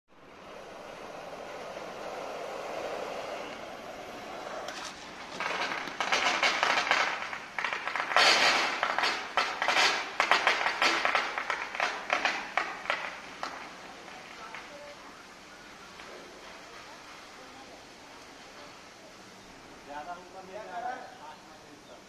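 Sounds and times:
water spraying from fire hydrant: 0.2s - 15.0s.

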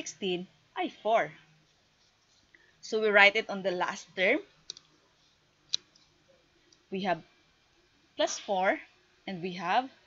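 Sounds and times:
woman speaking: 0.0s - 1.4s, 2.8s - 4.6s, 6.9s - 7.3s, 8.2s - 10.0s.

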